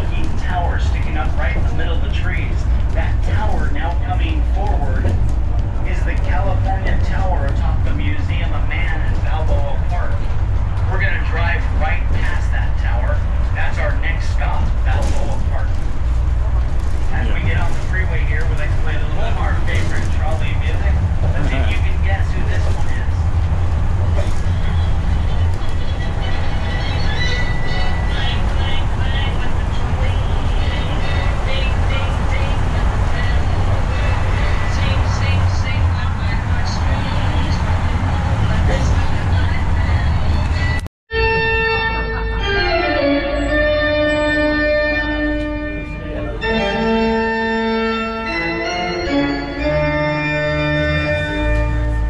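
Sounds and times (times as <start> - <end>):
bus rumble from inside: 0.0 - 52.0
organ playing held chords: 16.4 - 35.3, 41.1 - 52.0.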